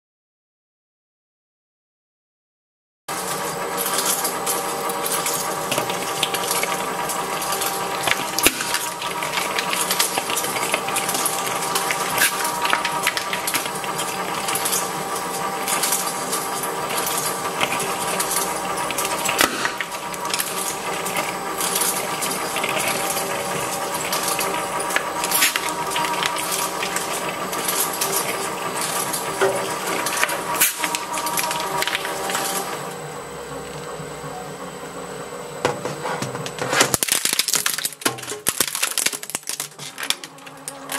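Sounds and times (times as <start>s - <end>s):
shredder motor humming: 3.1s - 40.9s.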